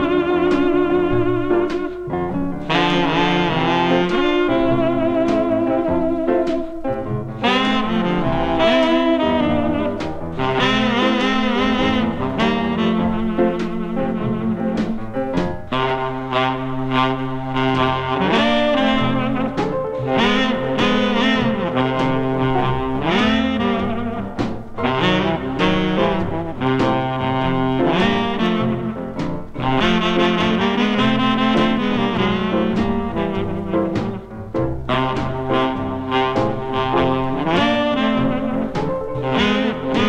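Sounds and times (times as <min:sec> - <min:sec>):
brass section sustained notes: 0:00.0 - 0:34.3, 0:34.9 - 0:40.0
saxophone: 0:00.0 - 0:40.0.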